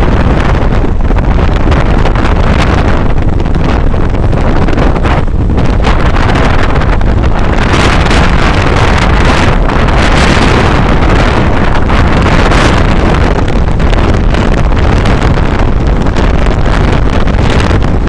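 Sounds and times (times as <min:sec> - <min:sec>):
motorcycle running: 0:00.0 - 0:18.0
wind buffeting microphone: 0:00.0 - 0:18.0.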